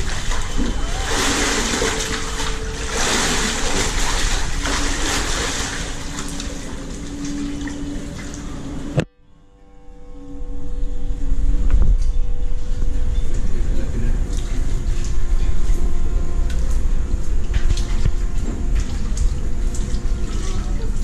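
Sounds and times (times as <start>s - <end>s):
water pouring and splashing: 0.0s - 8.9s, 16.5s - 21.0s
rushing water with low rumble: 0.0s - 9.0s, 11.6s - 21.0s.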